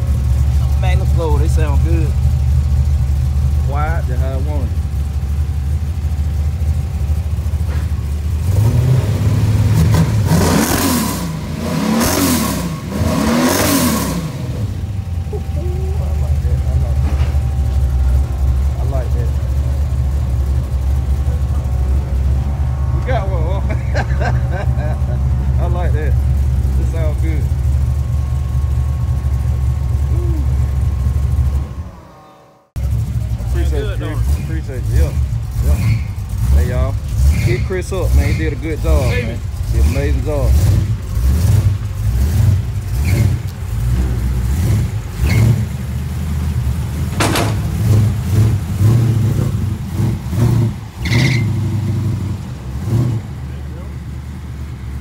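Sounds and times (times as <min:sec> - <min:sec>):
engine idling and revving: 0:00.0 - 0:55.0.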